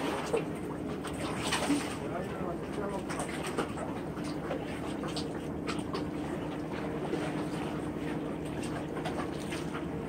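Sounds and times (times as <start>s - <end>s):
distant small boat engine: 0.0s - 10.0s
sea ambience: 0.0s - 10.0s.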